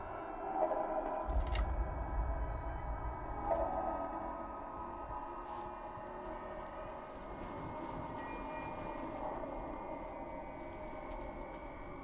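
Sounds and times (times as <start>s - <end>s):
ambient horror drone: 0.0s - 12.0s.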